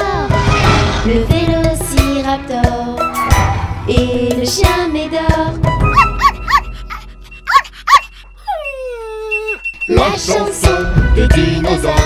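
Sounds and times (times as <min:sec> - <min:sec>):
puppy yipping: 0:05.9 - 0:09.9
puppy whining: 0:05.9 - 0:10.0.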